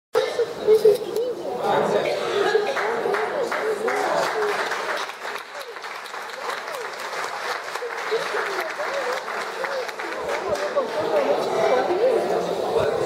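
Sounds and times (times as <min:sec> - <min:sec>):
audience applauding: 0:02.7 - 0:11.3.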